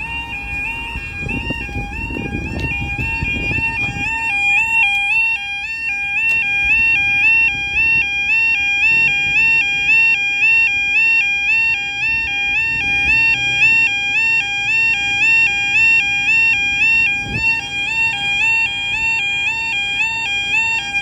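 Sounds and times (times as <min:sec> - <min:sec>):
level crossing alarm warbling: 0:00.0 - 0:21.0.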